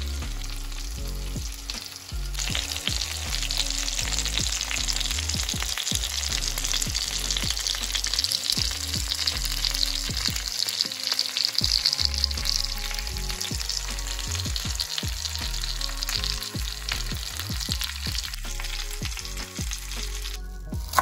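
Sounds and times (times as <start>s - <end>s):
chicken sizzling in oil: 0.0s - 21.0s.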